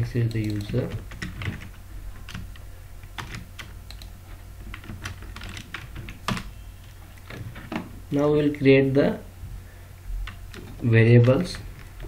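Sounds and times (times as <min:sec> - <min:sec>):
low steady hum: 0:00.0 - 0:12.0
keyboard keystroke clicks: 0:00.3 - 0:01.5, 0:03.2 - 0:04.1.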